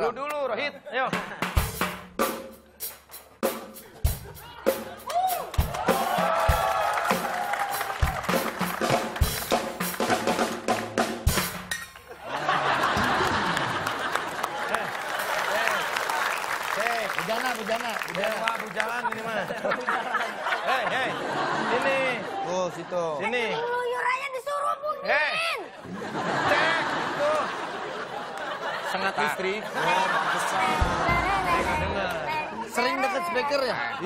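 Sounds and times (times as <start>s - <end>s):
snare and bass drum hits: 30.7s - 32.0s.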